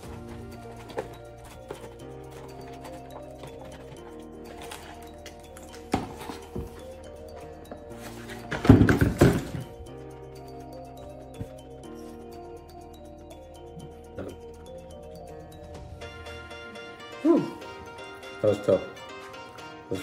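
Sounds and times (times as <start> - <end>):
paperboard box being handled: 0.0 - 6.9
background music: 0.0 - 20.0.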